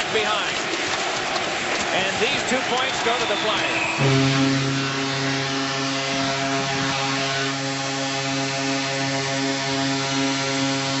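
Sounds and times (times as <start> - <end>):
crowd noise: 0.0 - 11.0
arena horn long low note: 3.9 - 11.0.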